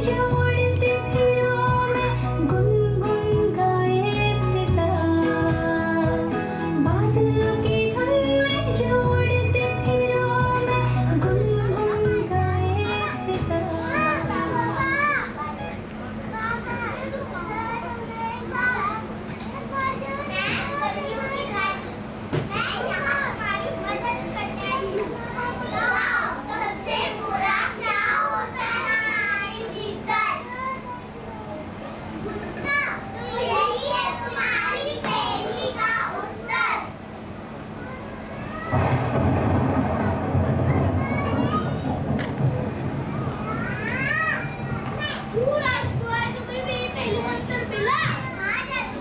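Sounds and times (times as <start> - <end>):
background music: 0.0 - 14.8
children talking and calling: 0.0 - 49.0
steady low hum: 36.8 - 47.7.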